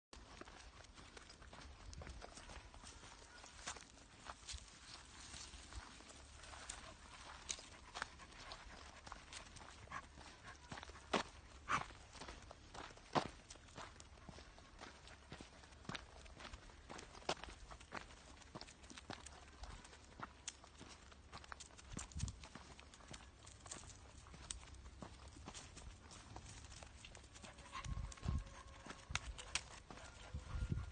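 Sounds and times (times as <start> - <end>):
footsteps on dirt path: 0.2 - 30.9.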